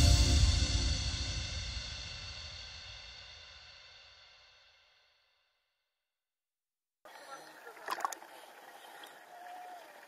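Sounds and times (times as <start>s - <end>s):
sea water sloshing and splashing: 7.4s - 9.3s.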